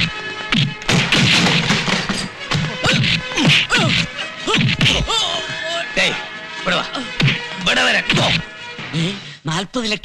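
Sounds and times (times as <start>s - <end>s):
background music: 0.0s - 10.0s
punch and slap hits: 0.5s - 5.1s, 7.2s - 7.5s.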